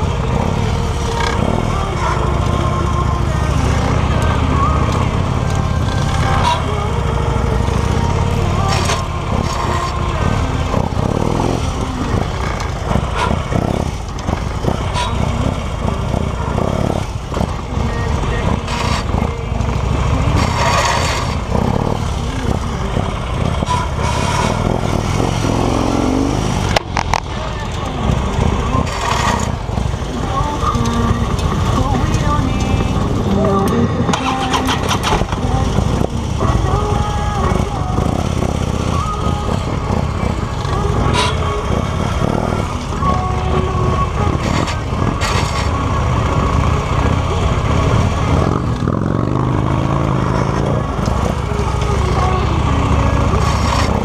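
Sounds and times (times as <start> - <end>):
motorcycle engine revving at low speed: 0.0 - 54.0.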